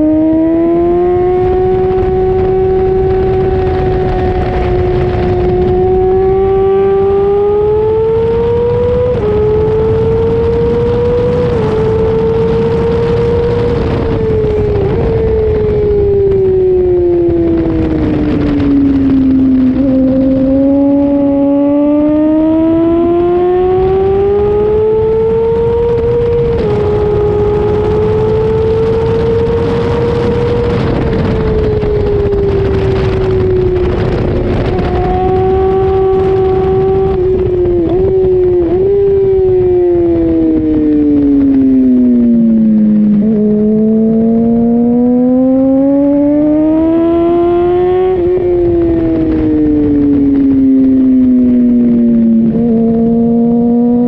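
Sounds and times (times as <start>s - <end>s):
motorcycle engine revving: 0.0s - 54.0s
wind rush: 0.0s - 54.0s.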